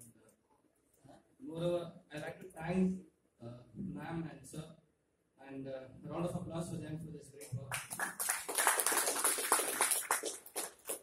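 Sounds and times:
audience applauding: 7.7s - 11.0s.

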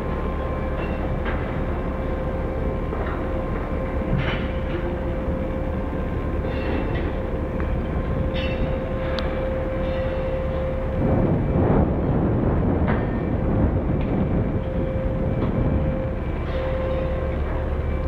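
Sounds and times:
crane hoist machinery rumble and whine: 0.0s - 18.0s.

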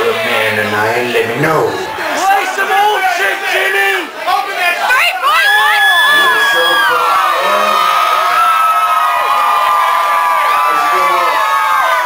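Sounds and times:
crowd cheering and screaming: 1.7s - 12.0s.

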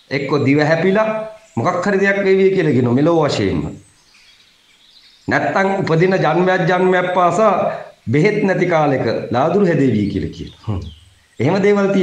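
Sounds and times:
faint background hiss: 0.0s - 12.0s
man speaking: 0.1s - 3.8s, 5.3s - 12.0s.

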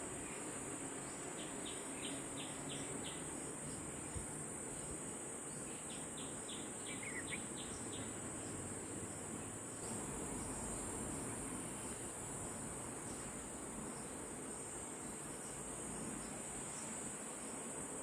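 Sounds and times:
insect chorus: 0.0s - 18.0s.

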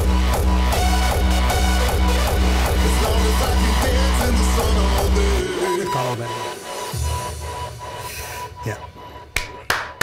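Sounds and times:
electronic dance music: 0.0s - 10.0s
sharp hand claps: 9.3s - 10.0s.

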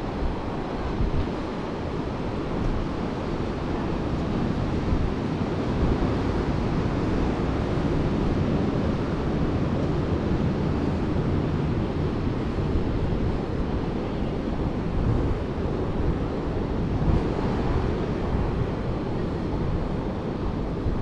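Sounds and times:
ocean surf washing onto beach: 0.0s - 21.0s
wind buffeting microphone: 0.0s - 21.0s.

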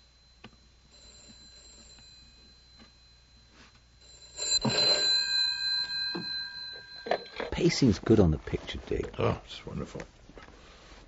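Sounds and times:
bell ringing: 0.0s - 8.1s.

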